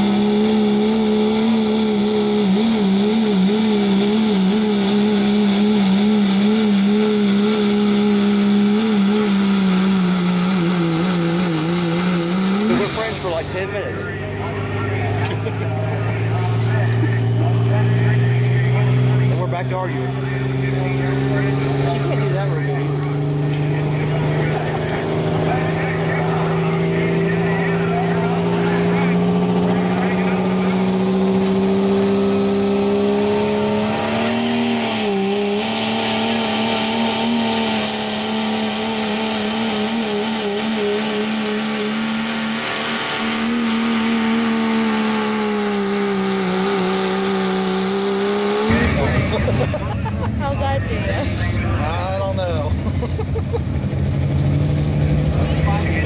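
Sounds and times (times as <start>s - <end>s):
diesel truck engine revving: 0.0s - 56.0s
turbocharger whistle: 23.5s - 49.7s.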